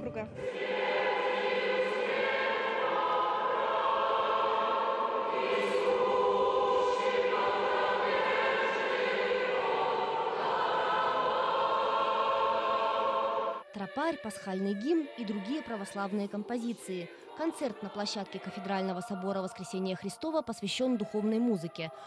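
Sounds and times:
choir singing a hymn: 0.4 - 22.0.

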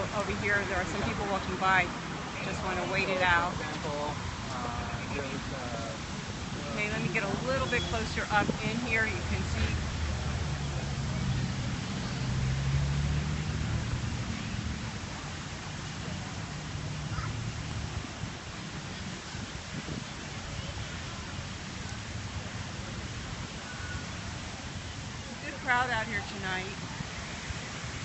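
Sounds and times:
faint voices of people: 0.0 - 12.6, 13.4 - 27.7
fountains rushing and splashing: 0.0 - 28.0.

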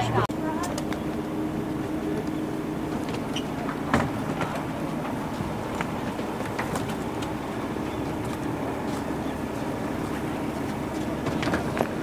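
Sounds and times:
bus engine idling: 0.0 - 12.0.

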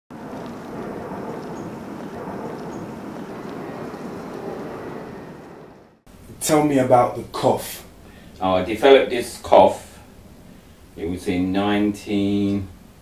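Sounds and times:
distant city traffic: 0.1 - 13.0.

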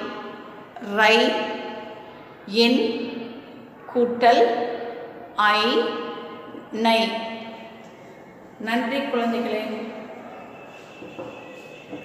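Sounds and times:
high-pitched whine: 7.5 - 12.0.

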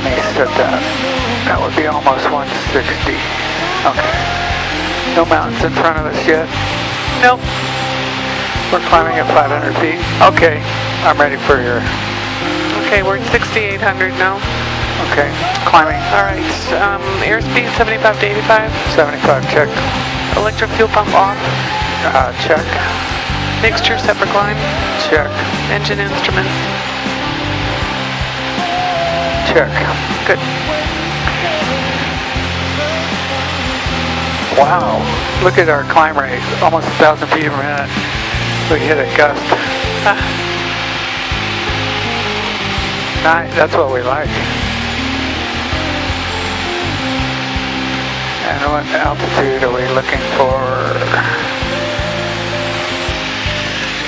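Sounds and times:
airflow: 0.0 - 54.0
airplane piston engine drone: 0.0 - 54.0
background music: 0.0 - 54.0.

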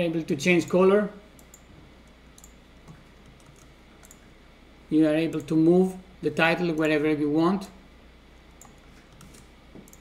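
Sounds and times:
computer mouse clicks: 1.4 - 1.7, 2.3 - 4.2, 8.4 - 10.0.

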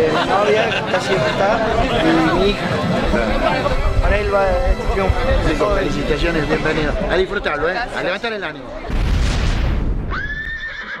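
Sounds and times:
horse whinnying: 10.1 - 11.0.

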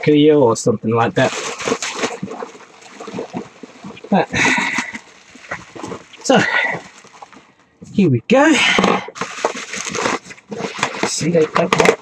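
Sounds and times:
bubble wrap crinkling: 1.2 - 7.5, 9.1 - 12.0.

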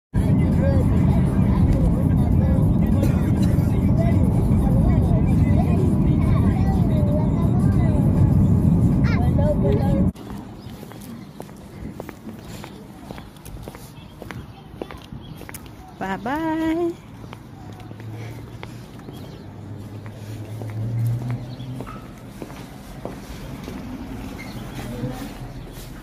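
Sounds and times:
car road and engine rumble: 0.2 - 15.2, 16.4 - 26.0.

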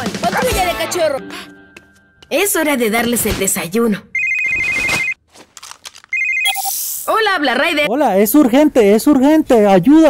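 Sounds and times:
electronic trilling ringtone: 4.2 - 5.2, 6.1 - 7.0
short beep: 6.1 - 7.1.

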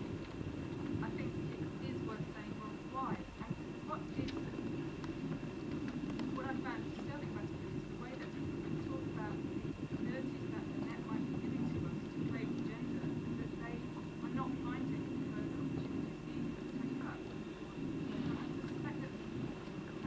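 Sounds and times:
faint high whine: 0.0 - 20.0
low room hum: 0.0 - 20.0.

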